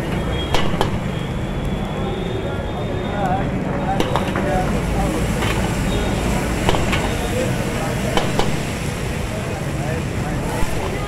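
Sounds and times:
burner fire roaring: 0:00.0 - 0:11.0.

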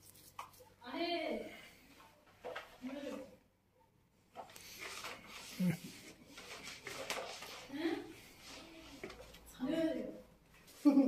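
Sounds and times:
cloth rubbing on vinyl floor: 0:04.4 - 0:09.9.

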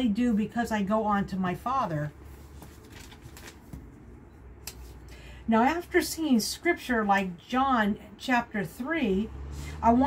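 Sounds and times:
paper rustling: 0:02.3 - 0:04.0.

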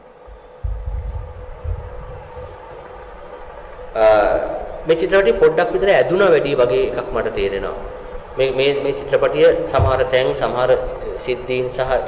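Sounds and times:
low rumble: 0:00.6 - 0:03.1.

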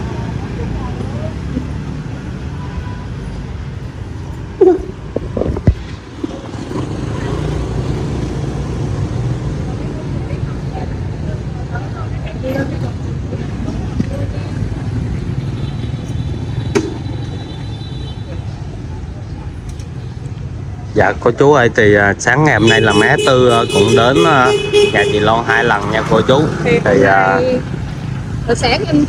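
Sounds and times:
motorbike and car engines rumbling: 0:00.0 - 0:29.0.

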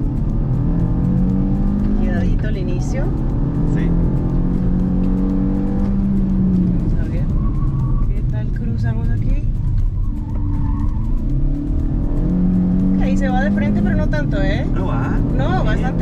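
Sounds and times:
car engine from inside cabin: 0:00.0 - 0:16.0.

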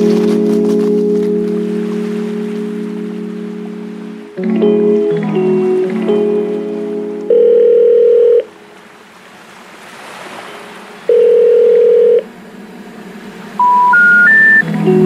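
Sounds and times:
background music: 0:00.0 - 0:08.7, 0:13.6 - 0:15.0
telephone ringback tone: 0:07.3 - 0:08.5, 0:11.1 - 0:12.2, 0:13.6 - 0:14.7
rising short beeps: 0:13.6 - 0:14.7.

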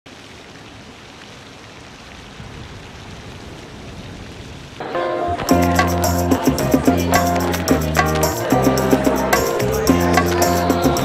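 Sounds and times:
fountain water splashing: 0:00.1 - 0:11.0.

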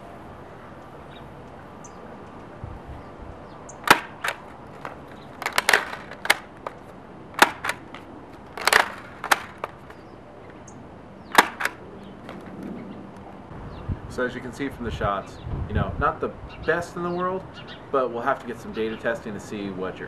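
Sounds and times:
lever-arm loading: 0:03.8 - 0:06.5, 0:07.4 - 0:07.9, 0:08.5 - 0:09.7, 0:11.3 - 0:11.8
toy blaster firing plastic clacks: 0:03.8 - 0:06.8, 0:07.4 - 0:09.9, 0:11.3 - 0:11.8.

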